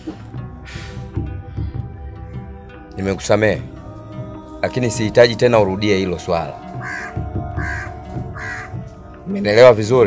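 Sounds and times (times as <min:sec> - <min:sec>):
bird calling: 0:06.7 - 0:09.6.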